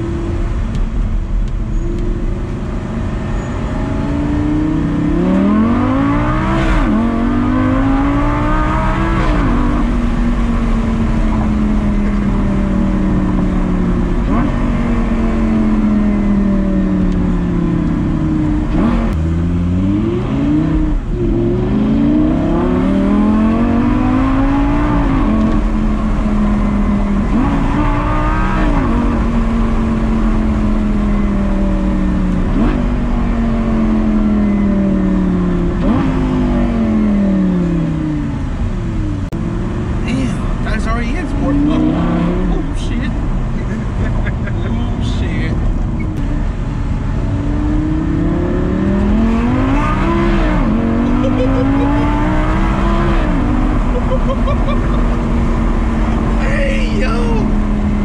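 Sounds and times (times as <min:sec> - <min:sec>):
car engine accelerating from inside: 0:00.0 - 0:58.0.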